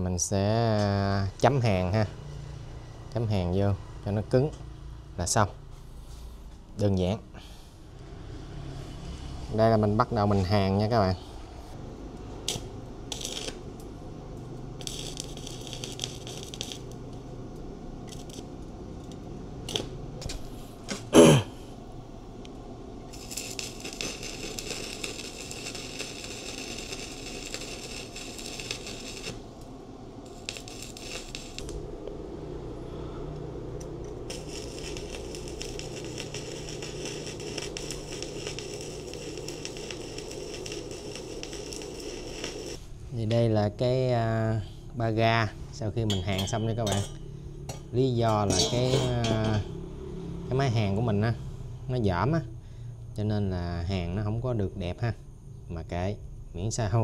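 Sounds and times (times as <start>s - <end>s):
welding arc crackling and hissing: 11.7s - 21.7s, 23.0s - 32.8s, 33.7s - 43.0s.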